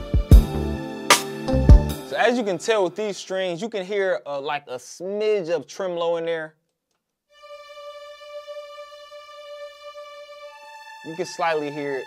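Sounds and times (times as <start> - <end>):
strings holding high note: 7.4 - 12.0.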